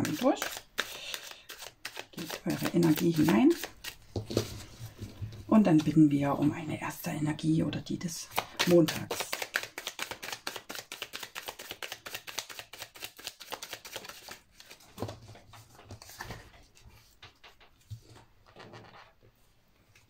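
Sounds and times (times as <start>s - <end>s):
cards shuffled by hand: 0.0s - 4.7s, 8.3s - 16.6s.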